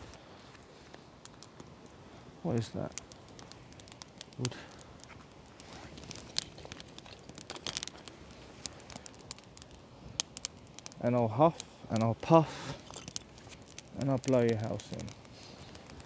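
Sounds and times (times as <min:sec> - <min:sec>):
wood fire crackling and popping: 0:00.0 - 0:16.0
wood pieces laid on fire: 0:00.0 - 0:16.0.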